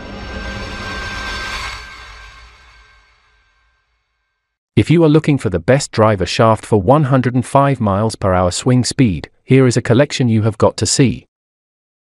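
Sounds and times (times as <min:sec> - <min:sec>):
rising rush of noise: 0:00.0 - 0:03.7
low rumble: 0:00.0 - 0:03.9.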